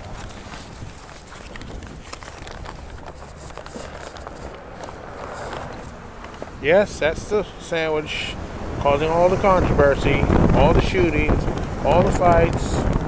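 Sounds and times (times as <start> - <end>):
paper bag rustling and crinkling: 0.0 - 6.6.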